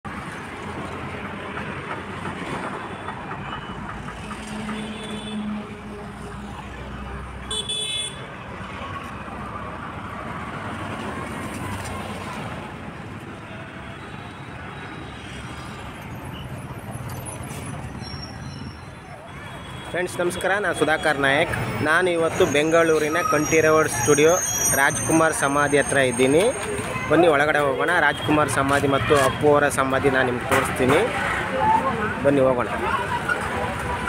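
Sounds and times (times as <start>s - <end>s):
street traffic passing: 0.0s - 34.0s.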